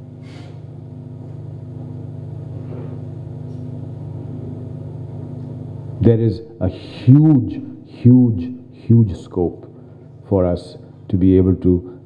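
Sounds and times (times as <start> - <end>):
low hum: 1.0 - 11.1.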